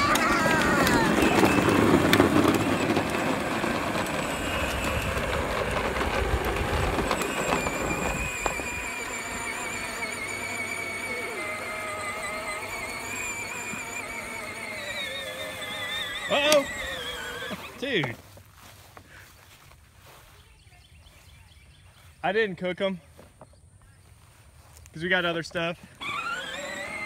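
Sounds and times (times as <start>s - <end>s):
electric motor whine: 0.0s - 18.2s, 25.2s - 27.0s
plastic wheels rumbling on asphalt: 0.0s - 27.0s.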